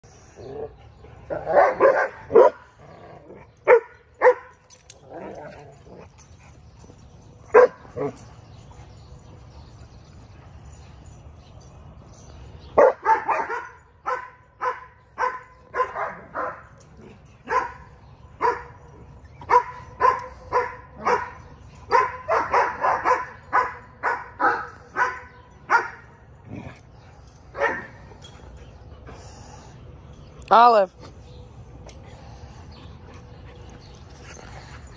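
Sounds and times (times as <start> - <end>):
dog barking: 1.5 - 2.6, 3.7 - 4.5, 19.5 - 21.3.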